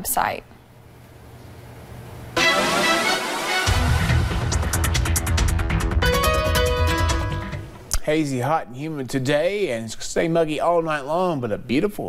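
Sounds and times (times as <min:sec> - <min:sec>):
news transition music sting: 0:02.4 - 0:07.8.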